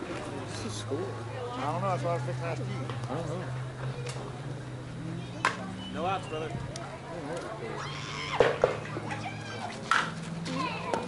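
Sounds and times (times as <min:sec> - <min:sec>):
players shouting: 0:07.6 - 0:11.0.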